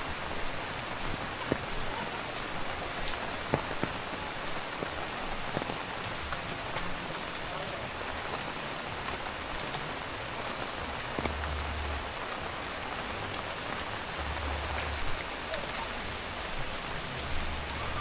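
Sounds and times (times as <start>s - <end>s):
steady rain falling: 0.0s - 18.0s.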